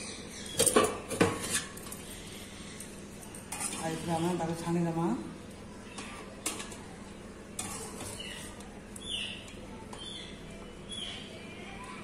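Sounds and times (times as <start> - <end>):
cooktop hiss and hum: 0.0 - 12.0.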